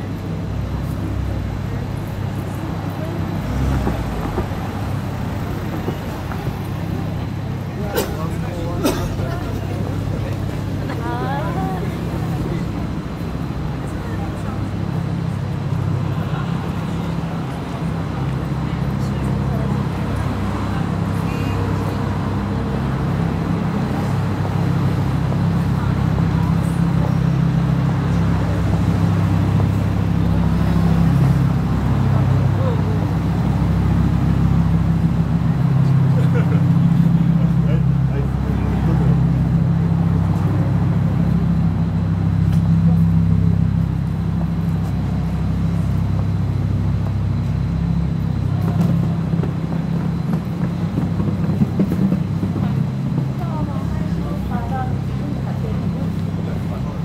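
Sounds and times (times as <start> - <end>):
people talking: 0.0 - 57.0
traffic hum: 0.0 - 57.0.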